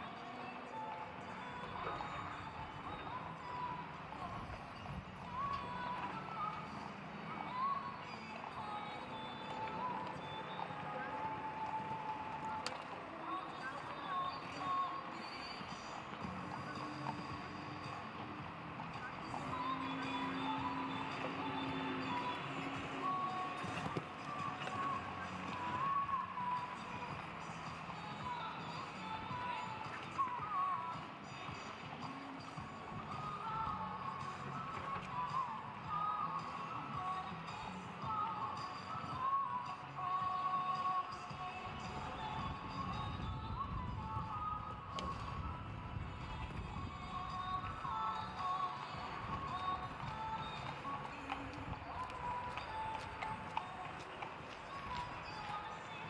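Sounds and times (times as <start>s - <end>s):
music with wandering melody: 0.0s - 56.0s.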